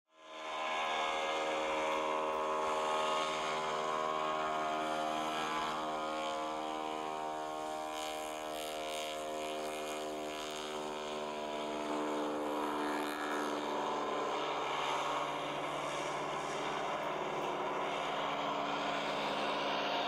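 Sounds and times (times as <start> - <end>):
propeller plane engine drone: 0.1 - 20.0.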